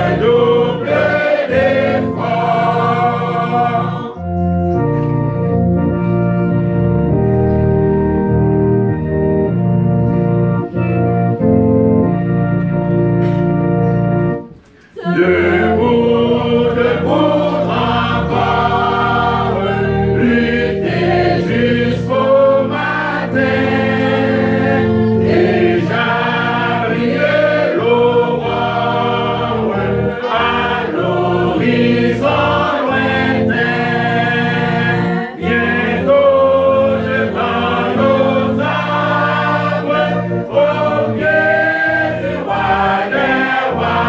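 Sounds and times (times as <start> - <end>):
choir and congregation singing hymn: 0.0 - 44.0
organ chords: 0.0 - 44.0.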